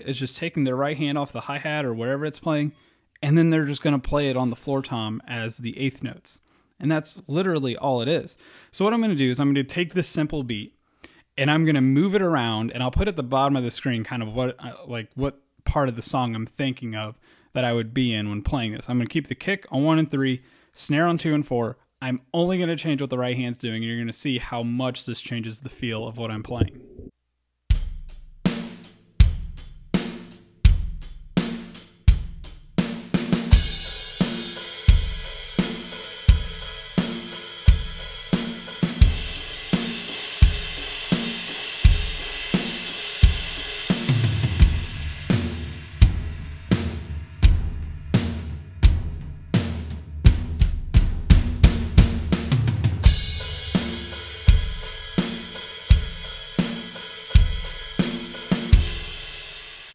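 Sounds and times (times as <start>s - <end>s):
drum kit playing steady beat: 27.7s - 59.9s
floor tom booming: 41.9s - 56.2s
cymbal wash: 53.1s - 59.9s.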